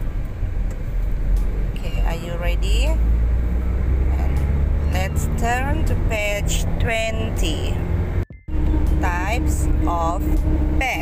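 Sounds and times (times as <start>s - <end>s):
steady low rumble: 0.0s - 11.0s
person's voice: 1.8s - 3.0s, 4.1s - 7.8s, 9.0s - 11.0s.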